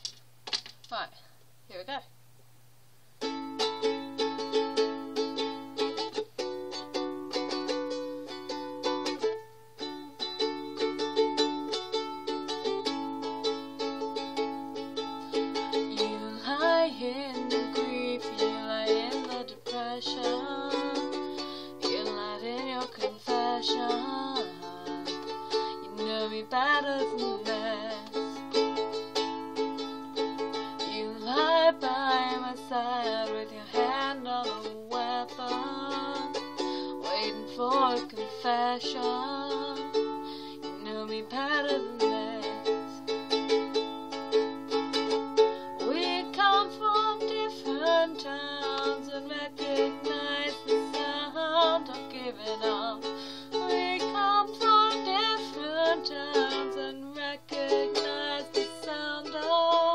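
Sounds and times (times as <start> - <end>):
ukulele strumming chords: 3.2 - 59.9
person singing: 3.3 - 59.9.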